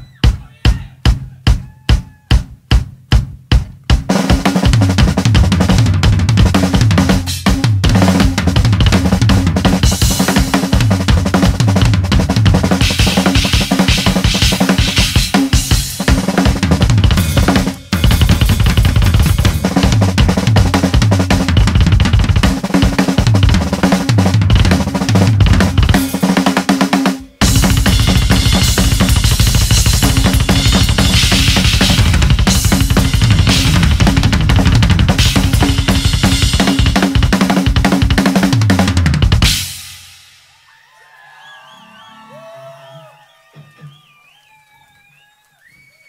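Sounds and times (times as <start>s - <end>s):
rock drum solo: 0.0s - 40.8s.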